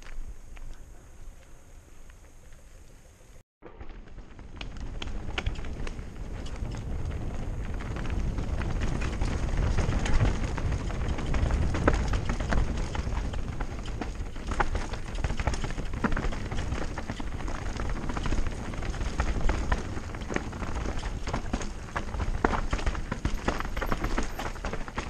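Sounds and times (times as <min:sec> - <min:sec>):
steady low rumble: 0:00.0 - 0:23.2
bike rattling and clacking: 0:03.6 - 0:25.0
bike tyres crunching over stones: 0:03.6 - 0:25.0.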